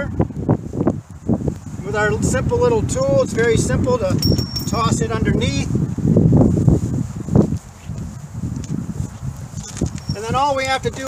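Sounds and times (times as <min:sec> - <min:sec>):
wind and handling rumble: 0:00.0 - 0:11.0
footsteps on asphalt: 0:00.3 - 0:04.9, 0:05.7 - 0:11.0.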